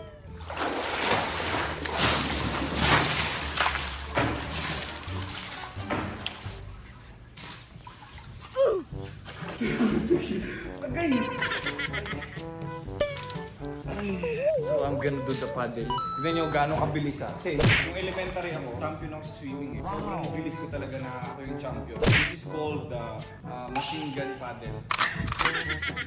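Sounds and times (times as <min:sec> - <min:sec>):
swimmer splashing into pool: 0:00.4 - 0:06.7
music with pitched notes: 0:09.0 - 0:24.8.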